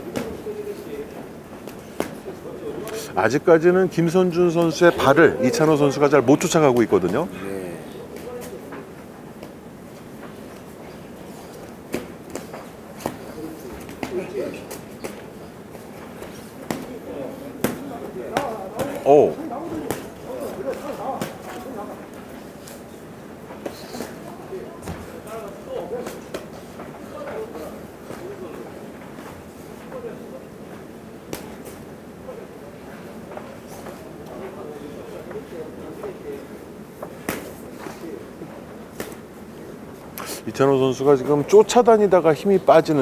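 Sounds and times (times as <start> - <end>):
murmur of voices: 0.0 - 43.0
boxing gloves slapping: 11.5 - 17.0, 19.7 - 21.8, 37.2 - 37.6, 39.0 - 39.3
boxing gloves smacking: 19.8 - 21.7, 37.2 - 37.6, 39.0 - 39.3.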